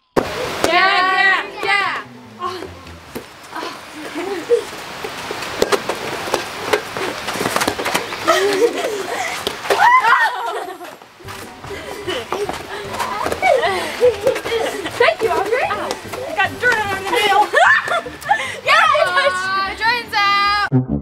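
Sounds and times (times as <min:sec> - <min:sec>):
people calling out and laughing: 0:00.4 - 0:05.1, 0:08.1 - 0:11.0, 0:11.6 - 0:20.7
high cry: 0:09.7 - 0:10.6, 0:17.3 - 0:19.4.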